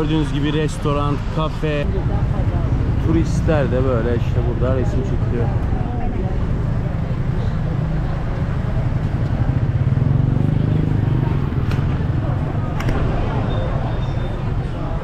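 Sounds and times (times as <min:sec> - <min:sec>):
voices of people: 0:00.0 - 0:15.0.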